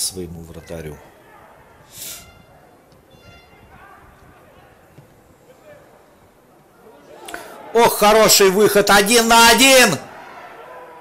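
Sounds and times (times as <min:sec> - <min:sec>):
distant players shouting: 0:01.0 - 0:11.0
high pitched whistle: 0:02.0 - 0:03.7.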